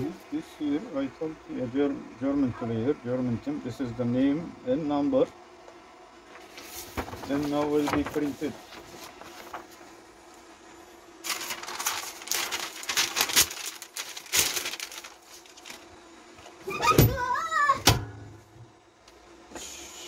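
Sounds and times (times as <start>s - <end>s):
faint steady hum: 0.0s - 20.0s
paper rustling and crinkling: 6.3s - 10.0s, 11.2s - 15.9s
heat press clunking shut: 17.8s - 18.4s.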